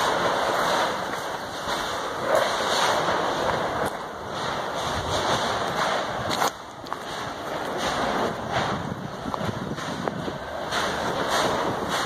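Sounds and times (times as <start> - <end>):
steam venting hiss: 7.2 - 12.0.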